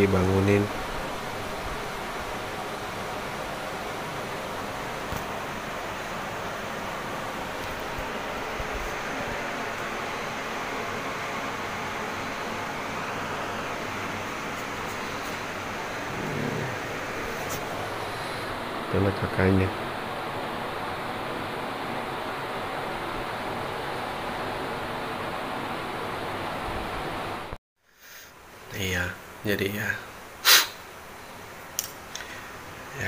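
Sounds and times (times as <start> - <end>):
steady hiss: 0.0 - 23.9, 27.9 - 33.0
low murmur: 14.6 - 17.7.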